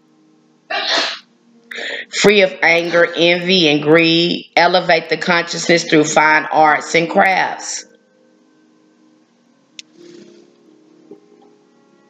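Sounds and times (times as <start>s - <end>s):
woman's sharp burst of breath: 0.8s - 2.1s.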